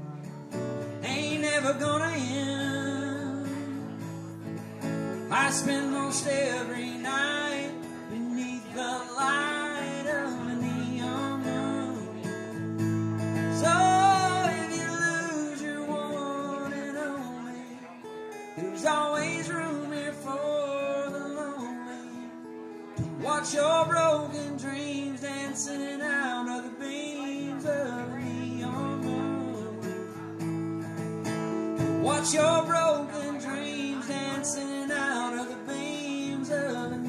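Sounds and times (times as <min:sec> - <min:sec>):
man singing: 0:00.0 - 0:30.6, 0:31.3 - 0:37.0
strummed acoustic guitar: 0:00.0 - 0:37.0.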